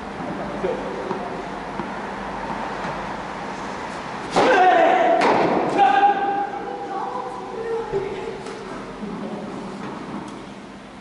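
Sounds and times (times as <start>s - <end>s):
player's drawn-out call: 4.3s - 8.4s.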